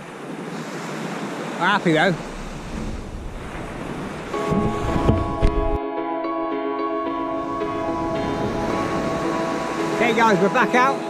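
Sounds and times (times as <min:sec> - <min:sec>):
small waves breaking on sand: 0:00.0 - 0:05.1
wind buffeting microphone: 0:01.8 - 0:05.8, 0:07.4 - 0:10.8
background music with held notes: 0:04.4 - 0:11.0.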